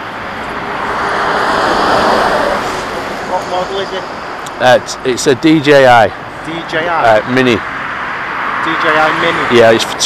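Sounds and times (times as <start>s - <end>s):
vehicle passing at speed: 0.5s - 4.4s, 6.5s - 9.7s.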